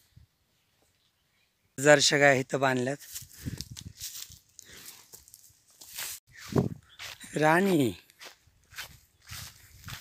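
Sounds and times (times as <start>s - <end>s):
footsteps through dry grass: 2.9s - 10.0s.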